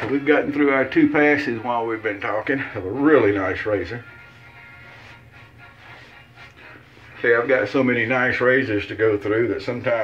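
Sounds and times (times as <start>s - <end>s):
faint background music: 0.0s - 10.0s
towel rubbing and patting face: 3.6s - 8.0s.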